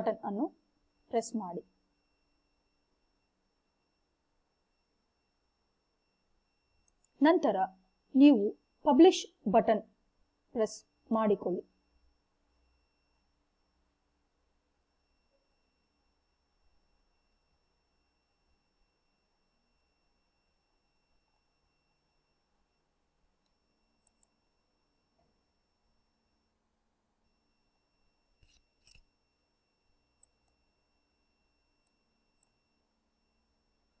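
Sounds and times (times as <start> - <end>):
computer mouse clicks: 23.4 - 24.4, 30.2 - 30.6, 31.8 - 32.6
high electrical whine: 27.2 - 34.0.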